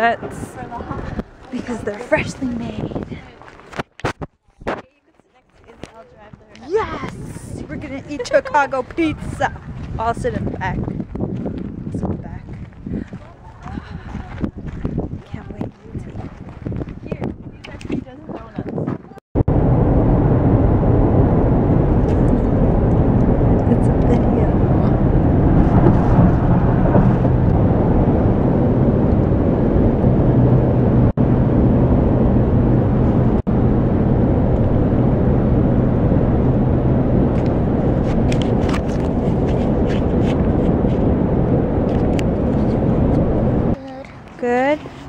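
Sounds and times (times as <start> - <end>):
car road and engine rumble: 19.4 - 45.0.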